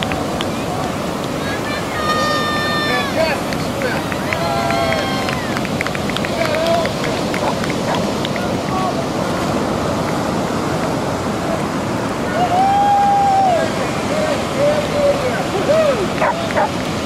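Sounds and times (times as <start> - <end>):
people cheering and shouting: 0.0 - 9.1, 12.2 - 16.8
ocean surf breaking: 0.0 - 17.0
wind on microphone: 0.0 - 17.0.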